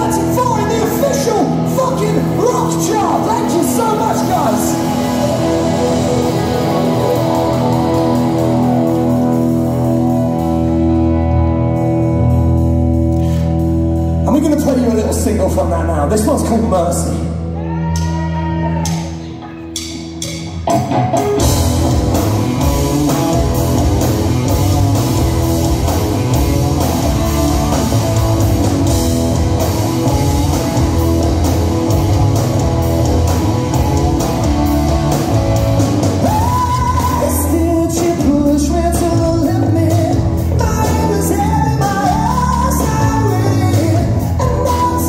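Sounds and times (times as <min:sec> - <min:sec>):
live rock band playing: 0:00.0 - 0:45.0
lead vocal singing: 0:36.2 - 0:45.0.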